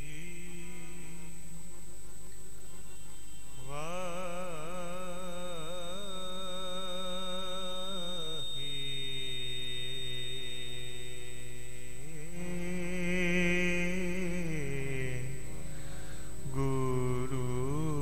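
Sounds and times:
thin high-pitched tone: 0:02.9 - 0:15.2.

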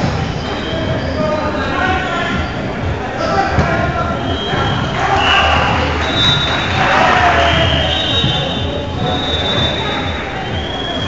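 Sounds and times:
players' voices echoing: 0:00.0 - 0:11.0.

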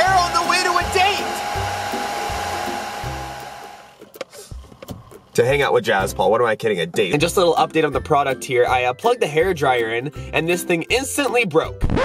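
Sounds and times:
hair dryer blowing: 0:00.0 - 0:04.1.

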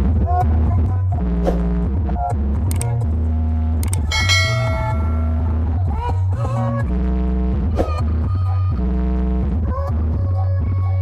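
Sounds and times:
bright bell ding: 0:04.0 - 0:05.7.

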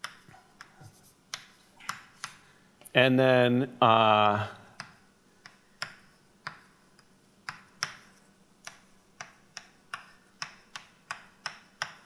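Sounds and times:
chalk tapping on a blackboard: 0:00.0 - 0:02.4, 0:04.7 - 0:12.0.

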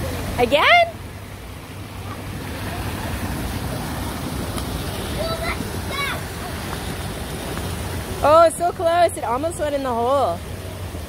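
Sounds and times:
water rushing over rocks: 0:00.0 - 0:11.0.

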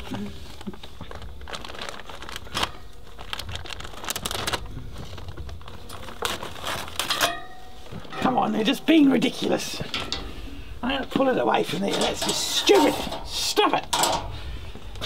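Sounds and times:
plastic cover crinkling: 0:00.0 - 0:10.2.

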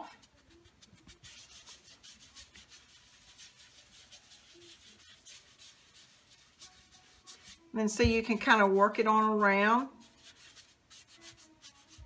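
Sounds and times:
sponge dabbing on glass jar: 0:00.0 - 0:12.0.

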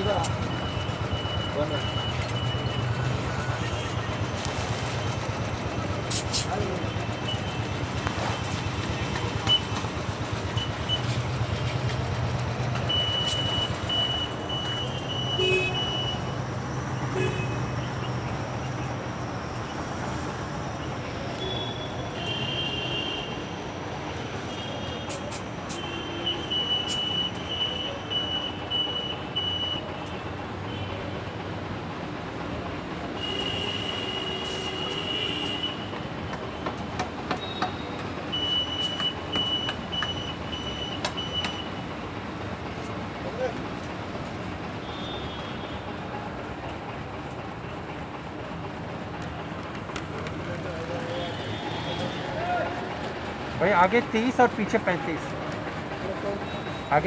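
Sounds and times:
traffic low hum: 0:00.0 - 0:57.0
high beeps: 0:00.3 - 0:03.8.

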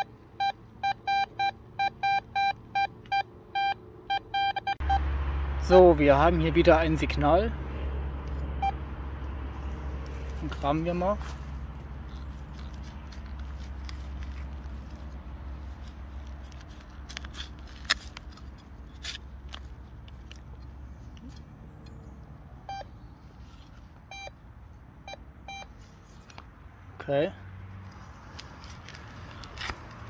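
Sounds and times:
metal detector beeps: 0:00.0 - 0:05.0, 0:22.7 - 0:22.9, 0:24.1 - 0:24.4, 0:25.0 - 0:25.8
trowel digging into soil: 0:10.1 - 0:19.9.

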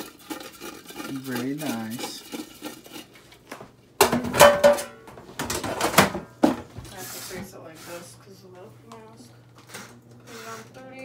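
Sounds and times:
potatoes rattling in basket: 0:00.0 - 0:02.9.

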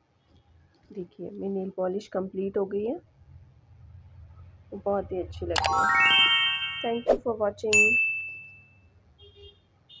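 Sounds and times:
notification bell ding: 0:05.6 - 0:07.1, 0:07.7 - 0:08.7.

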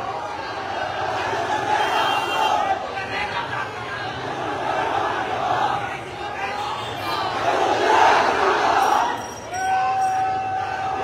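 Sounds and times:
crowd of men shouting: 0:00.0 - 0:11.0.

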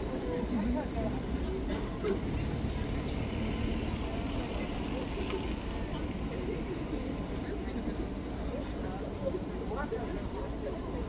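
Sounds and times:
faint scattered voices: 0:00.0 - 0:11.0
low rumble of traffic: 0:00.0 - 0:11.0.

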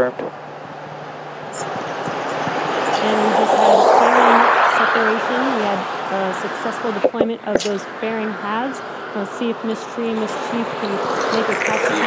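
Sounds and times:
voices: 0:00.0 - 0:00.3, 0:01.4 - 0:12.0.

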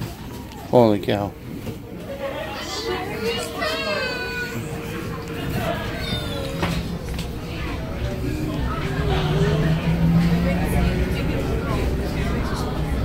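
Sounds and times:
children chattering: 0:00.0 - 0:13.0
steady tone: 0:03.5 - 0:13.0.

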